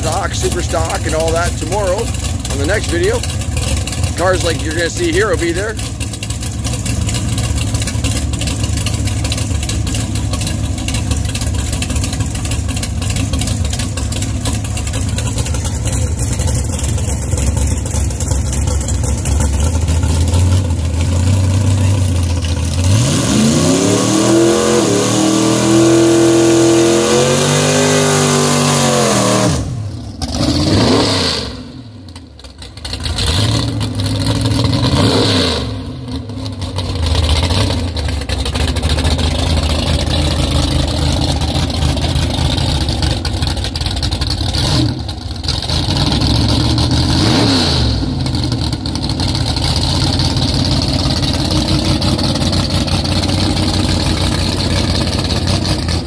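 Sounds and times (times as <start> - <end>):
race car engine revving: 0.0 - 32.0, 32.8 - 56.0
race engine idling: 0.0 - 56.0.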